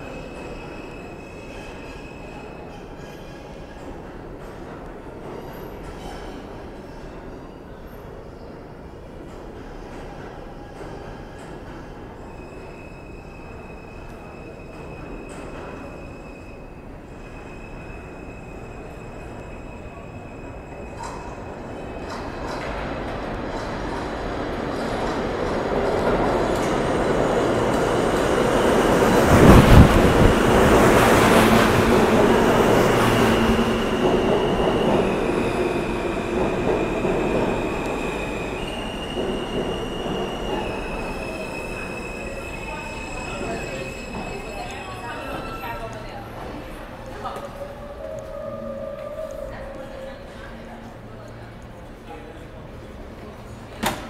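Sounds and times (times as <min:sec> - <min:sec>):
subway train rumbling past: 0:00.0 - 0:54.0.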